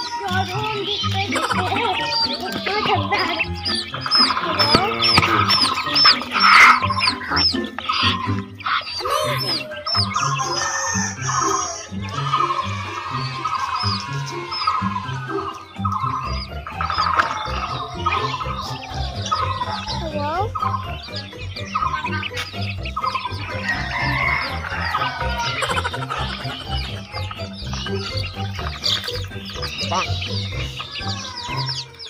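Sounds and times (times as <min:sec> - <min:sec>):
background music with steady beat: 0:00.0 - 0:32.0
chicks peeping: 0:00.0 - 0:32.0.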